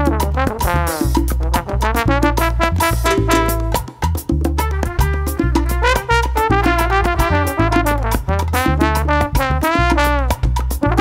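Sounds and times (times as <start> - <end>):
trumpets and trombones: 0.0 - 4.0, 4.6 - 11.0
steady percussion: 0.6 - 7.1
pulsing bass line: 2.9 - 4.4.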